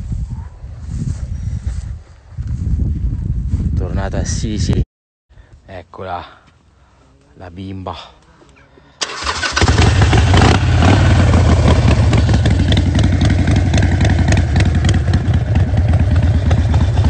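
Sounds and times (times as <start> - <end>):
motorcycle engine starting and running: 9.0 - 17.0.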